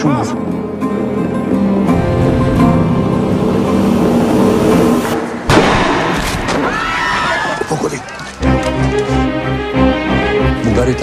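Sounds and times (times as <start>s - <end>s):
loud boom impact hit: 4.8s - 6.8s.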